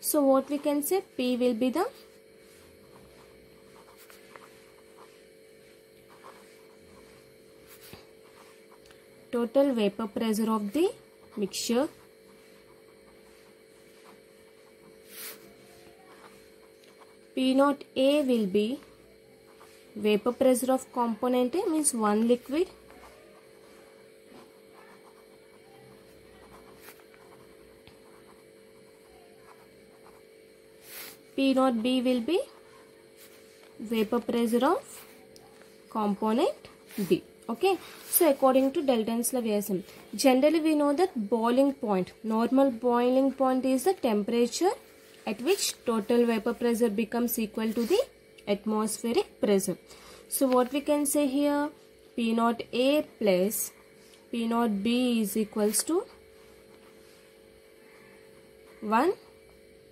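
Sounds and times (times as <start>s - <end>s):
electrical hum: 0.0s - 59.9s
marker scratching on paper: 0.2s - 41.8s, 43.1s - 46.8s, 47.4s - 48.1s.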